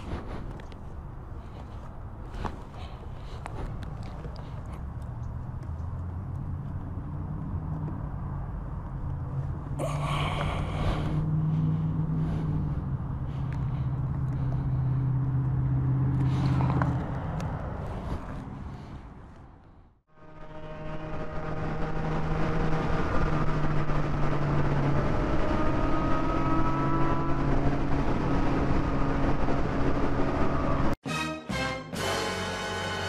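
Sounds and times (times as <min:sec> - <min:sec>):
motorcycle cruising at speed: 0:00.0 - 0:18.7, 0:20.1 - 0:31.0
wind and road noise: 0:00.0 - 0:31.0.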